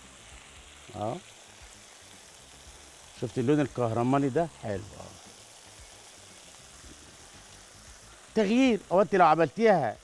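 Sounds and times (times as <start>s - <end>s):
chicken sizzling on a grill pan: 0.0s - 10.0s.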